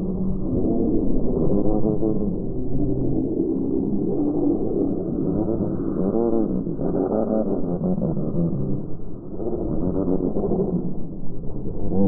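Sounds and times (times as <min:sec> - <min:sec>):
slowed gull calls moaning: 0:00.0 - 0:12.0.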